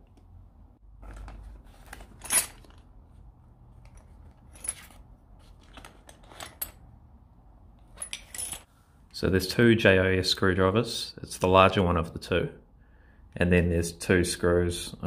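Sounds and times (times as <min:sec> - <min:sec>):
metal tools clinking in a bag: 0:01.1 - 0:02.9, 0:03.8 - 0:06.8.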